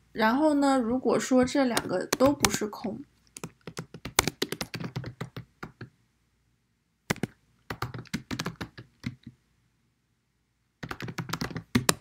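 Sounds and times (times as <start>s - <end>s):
keyboard typing: 0.8s - 5.9s, 7.1s - 9.4s, 10.8s - 12.0s.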